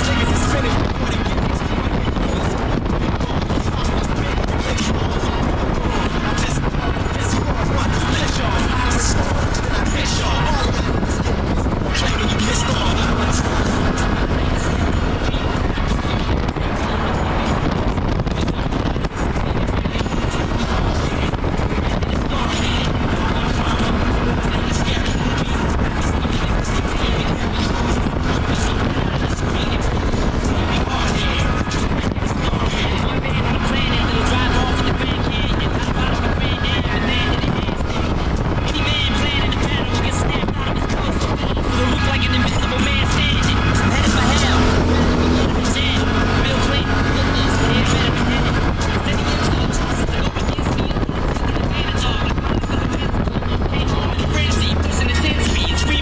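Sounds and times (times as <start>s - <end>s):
music with vocals: 0.0s - 56.0s
quad engine running: 0.0s - 56.0s
wind rumble on microphone: 0.0s - 56.0s.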